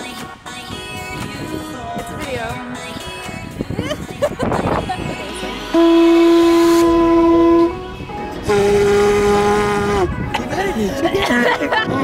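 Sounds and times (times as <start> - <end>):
music: 0.0 - 12.0
conch shell horn blasts: 5.2 - 10.2.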